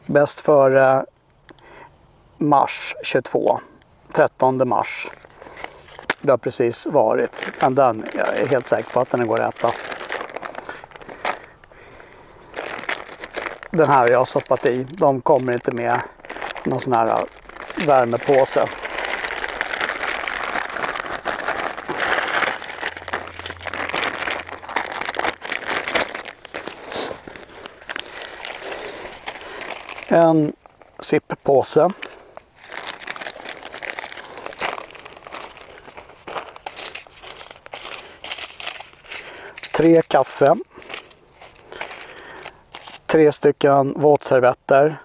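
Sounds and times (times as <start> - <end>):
plastic packaging crinkling: 4.7 - 43.2
sharp crackles: 4.8 - 43.2.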